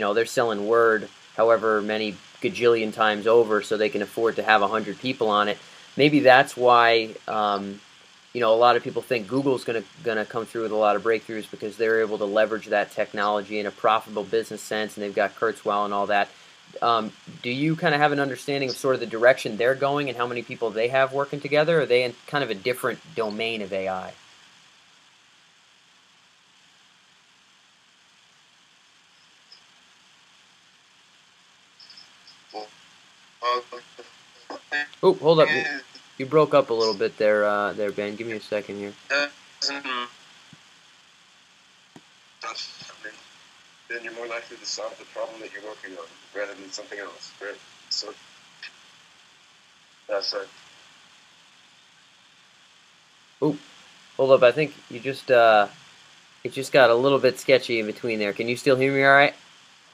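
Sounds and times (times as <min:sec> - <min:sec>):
broken speech fragments: 0:00.0 - 0:07.8, 0:08.4 - 0:24.2, 0:33.4 - 0:40.0, 0:42.4 - 0:43.3, 0:43.9 - 0:48.8, 0:50.1 - 0:50.5
faint call line hiss: 0:00.0 - 0:59.9.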